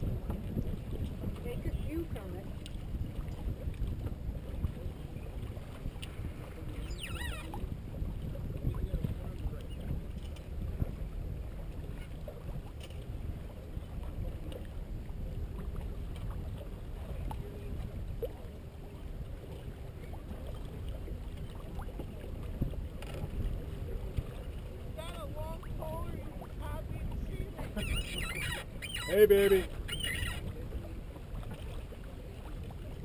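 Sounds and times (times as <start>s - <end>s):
water along boat hull: 0.0s - 33.0s
wind over microphone: 0.0s - 33.0s.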